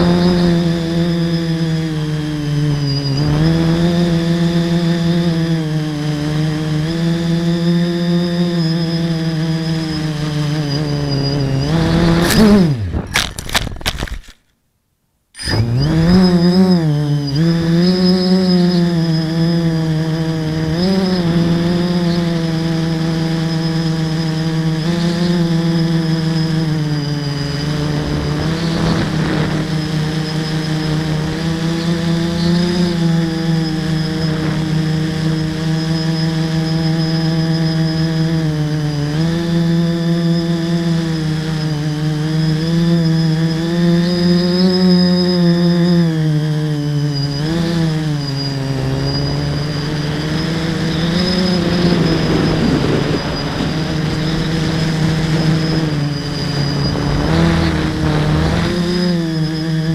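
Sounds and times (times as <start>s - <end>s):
thin steady high whine: 0.0s - 13.3s, 14.9s - 59.9s
drone motors buzzing: 0.0s - 14.4s, 15.4s - 59.9s
wind rumbling on microphone: 18.5s - 37.8s, 47.1s - 59.9s.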